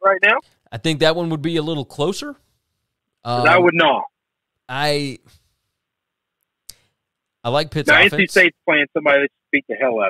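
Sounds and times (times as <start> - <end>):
man speaking: 3.2 - 4.1, 7.4 - 10.0.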